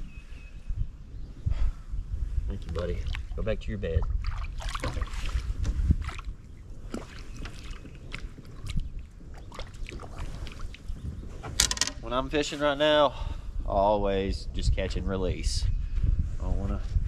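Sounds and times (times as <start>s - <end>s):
wind rumbling on microphone: 0.0s - 17.0s
small splashes: 4.0s - 10.8s
water lapping at boat hull: 4.0s - 11.0s.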